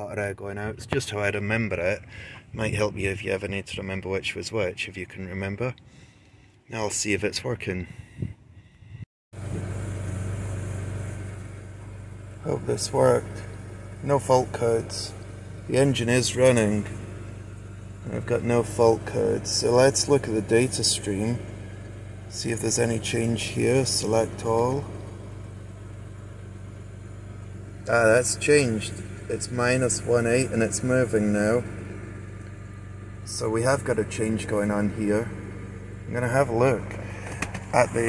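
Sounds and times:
car engine idling: 0.0 - 38.0.

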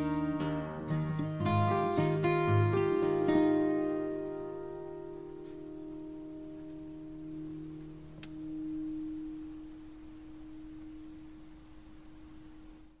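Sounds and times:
acoustic guitar ringing: 0.0 - 13.0.

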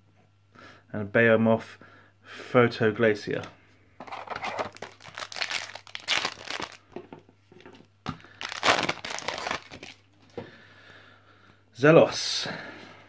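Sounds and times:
foil wrapper crinkling and tearing: 4.0 - 6.8, 8.3 - 10.0.

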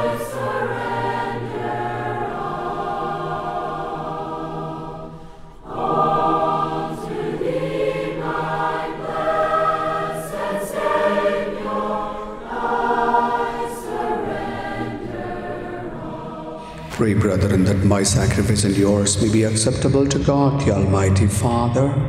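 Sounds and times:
church choir singing a hymn: 0.0 - 19.7.

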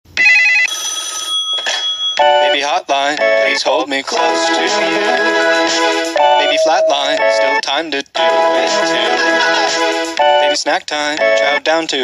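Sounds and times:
warbling telephone ring: 6.2 - 7.4
steady electronic tone: 6.2 - 7.5.

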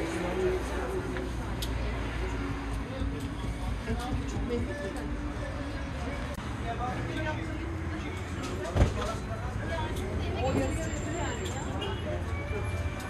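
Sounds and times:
indistinct background voices: 0.0 - 13.0.

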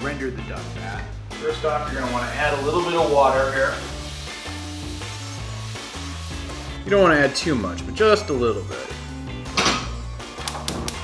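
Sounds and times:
background music with bass line: 0.0 - 11.0
faucet water running into pot: 1.6 - 6.8.

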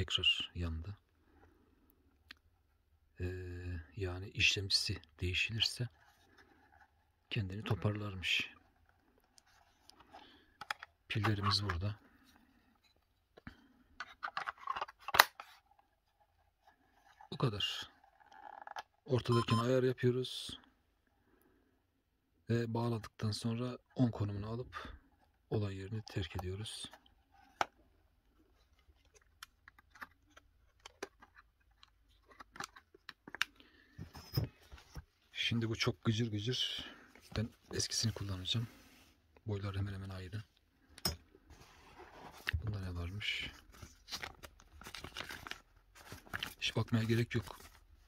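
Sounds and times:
plastic housing clicks and rubs: 8.6 - 11.8, 14.0 - 17.3, 18.0 - 19.0, 27.0 - 27.8, 28.5 - 33.6.

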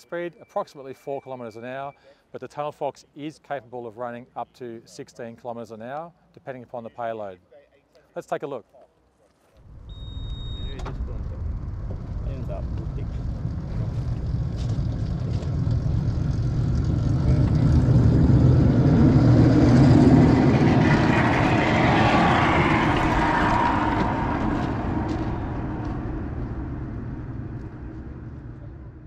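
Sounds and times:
rail trolley rolling on track: 11.4 - 28.4.

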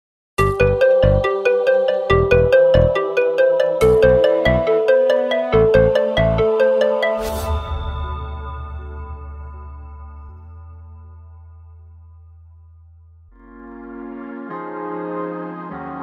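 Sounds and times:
bass beat: 0.4 - 1.3, 3.8 - 4.6
bell-like jingle notes: 0.4 - 10.3.

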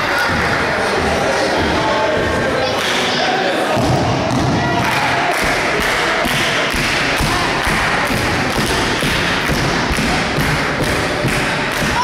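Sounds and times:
steady rhythmic thumping: 0.0 - 2.5, 3.8 - 12.0
loud continuous din: 0.0 - 12.0.

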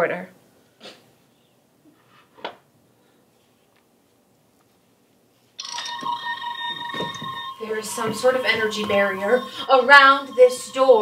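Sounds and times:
toy steady electronic tone: 5.6 - 11.0.

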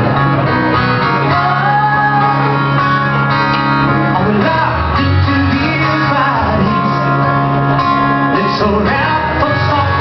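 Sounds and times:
acoustic guitar strumming: 0.0 - 10.0
man singing into a microphone: 3.9 - 7.5, 8.1 - 10.0.

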